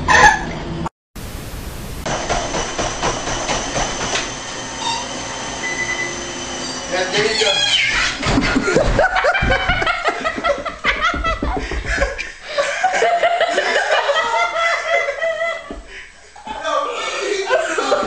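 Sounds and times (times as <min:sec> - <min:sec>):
squealing laughter: 0:07.1 - 0:10.3
body thumping on treadmill: 0:08.1 - 0:12.4.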